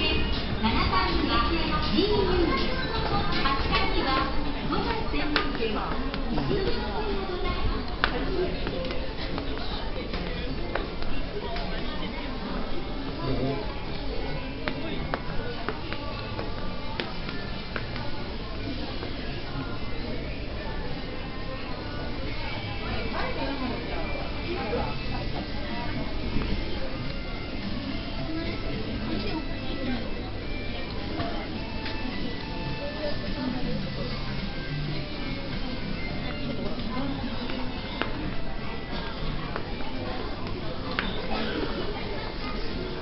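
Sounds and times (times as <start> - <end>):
indistinct chatter: 0.0 - 43.0
murmur of people talking: 0.0 - 43.0
background music: 12.5 - 43.0.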